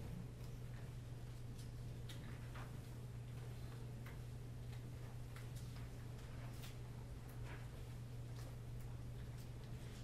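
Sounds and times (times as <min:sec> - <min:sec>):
low steady hum: 0:00.0 - 0:10.0
faint irregular clicks: 0:00.3 - 0:10.0.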